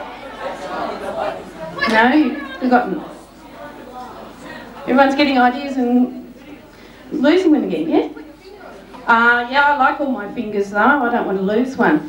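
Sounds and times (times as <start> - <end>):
background murmur of voices: 0.0 - 12.0.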